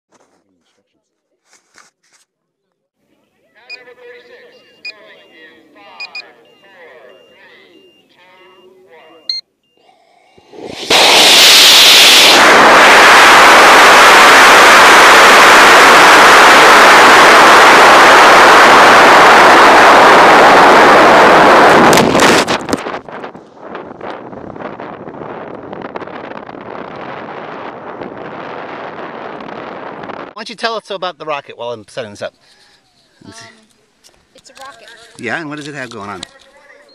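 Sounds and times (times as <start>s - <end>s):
muffled voices: 2.3s - 10.5s, 32.2s - 36.9s
rocket exhaust roar: 10.4s - 30.4s
rush of air: 10.4s - 30.4s.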